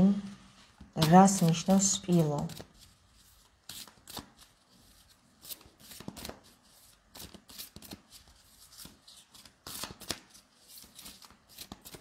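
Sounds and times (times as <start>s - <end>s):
cards being shuffled: 0.8s - 12.0s.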